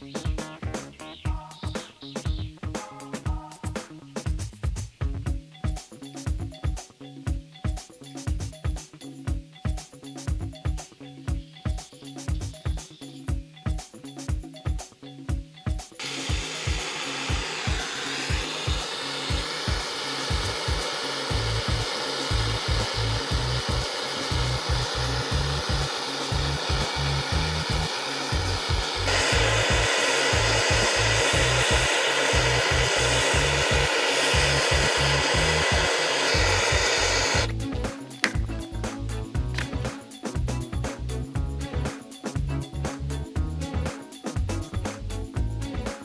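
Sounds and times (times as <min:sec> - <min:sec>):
background music with beat: 0:00.0 - 0:46.0
gas torch flame hissing: 0:16.0 - 0:37.5.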